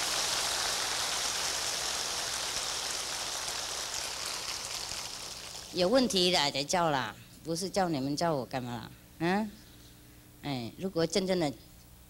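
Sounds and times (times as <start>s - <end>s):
large audience applauding: 0.0s - 5.7s.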